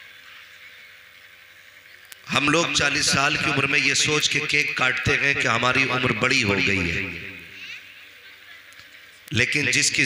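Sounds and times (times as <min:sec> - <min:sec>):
faint public address hum: 0:00.0 - 0:10.0.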